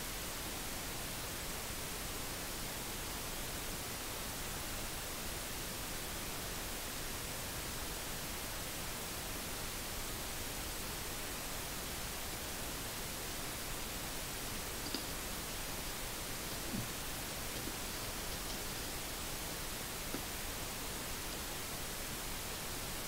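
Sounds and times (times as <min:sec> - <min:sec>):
recording hiss: 0:00.0 - 0:23.0.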